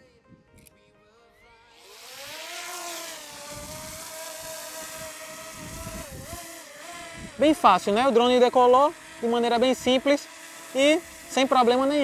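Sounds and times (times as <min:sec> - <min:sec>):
drone propellers whining: 0:01.7 - 0:12.0.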